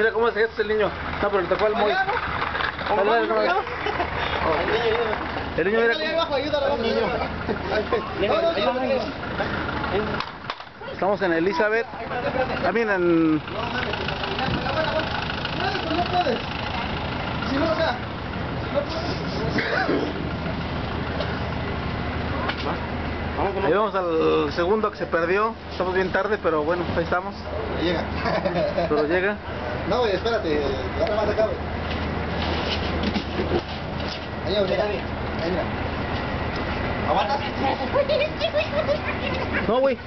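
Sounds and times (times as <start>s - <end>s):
truck engine idling: 0.0s - 40.0s
voices calling out: 0.0s - 40.0s.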